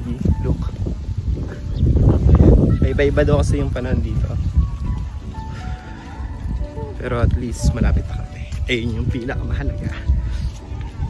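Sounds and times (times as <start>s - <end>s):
wind rumble on microphone: 0.0s - 11.0s.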